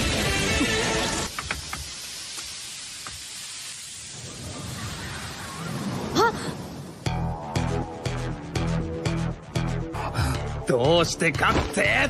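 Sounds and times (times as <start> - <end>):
smoke cloud hiss effect: 0.1 - 7.0.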